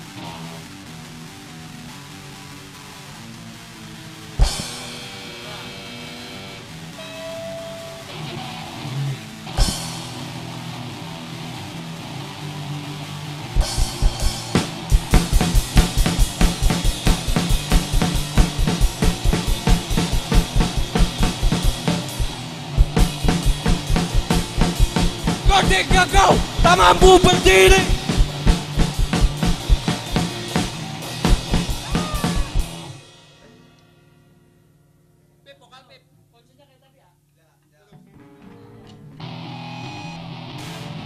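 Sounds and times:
rock band rehearsing: 0.0s - 33.2s, 38.2s - 41.0s
drums playing fast beat: 4.4s - 5.6s, 13.6s - 33.1s.

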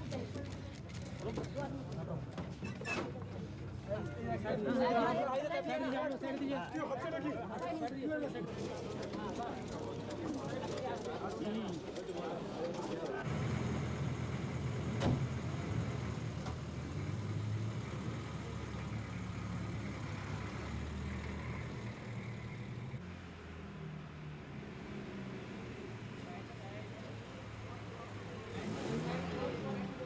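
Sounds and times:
people's voices: 0.0s - 13.3s, 25.6s - 30.0s
vehicle engine running low: 13.2s - 23.2s.

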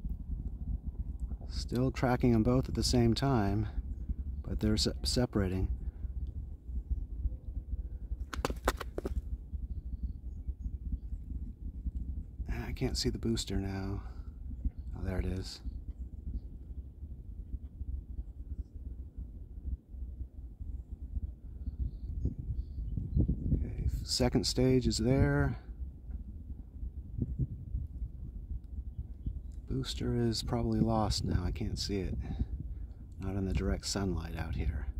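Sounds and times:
low rumble: 0.0s - 34.9s.

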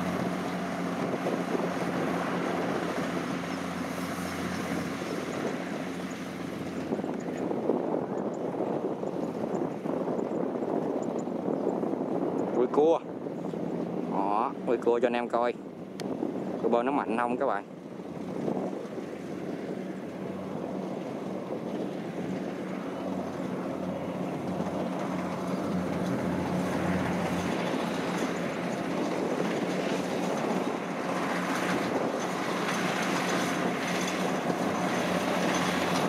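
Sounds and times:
combine harvester engine drone: 0.0s - 36.0s.

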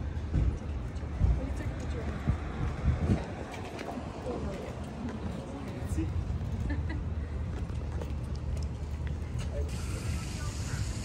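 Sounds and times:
low outdoor rumble: 0.0s - 11.0s
distant voices: 0.4s - 11.0s.

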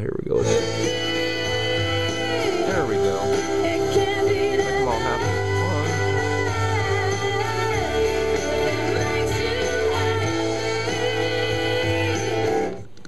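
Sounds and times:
song with guitar and singing: 0.4s - 13.0s.

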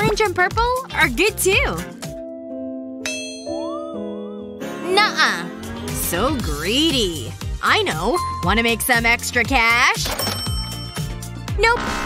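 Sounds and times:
sustained background music: 0.0s - 12.0s
metallic ding: 3.0s - 3.8s.

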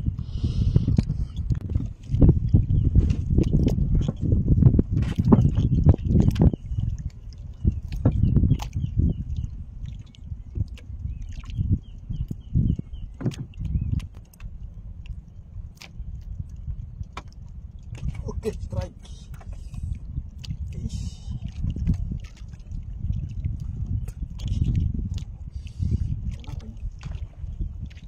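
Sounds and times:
rumbling wind: 0.0s - 28.0s
water sounds: 0.0s - 28.0s
knocks and clicks from boat hull: 3.0s - 6.6s, 7.8s - 8.9s, 12.7s - 14.5s, 17.0s - 18.2s.

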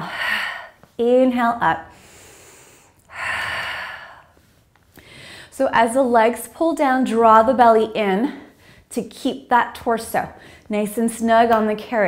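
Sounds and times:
woman breathing: 0.0s - 1.0s, 1.8s - 5.6s, 8.3s - 8.9s, 10.4s - 10.7s.

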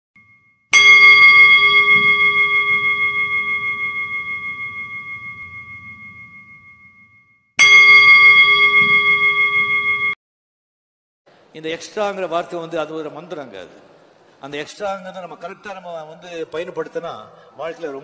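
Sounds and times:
bell ringing: 0.2s - 10.2s.

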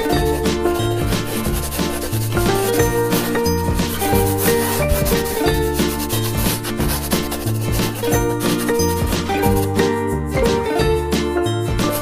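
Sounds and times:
cheerful background music: 0.0s - 12.0s
colouring in on paper: 0.2s - 9.8s.

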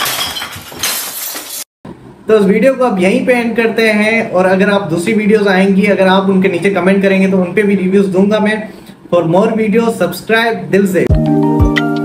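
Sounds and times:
debris clinking: 0.0s - 1.7s
glass smashing: 0.0s - 1.7s.

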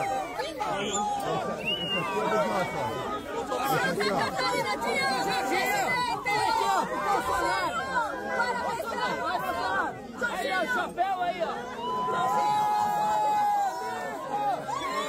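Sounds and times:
crowd talking and calling out: 0.0s - 15.0s.

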